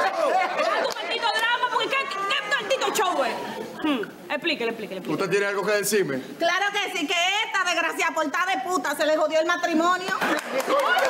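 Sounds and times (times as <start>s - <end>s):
people talking in raised voices: 0.0s - 4.3s.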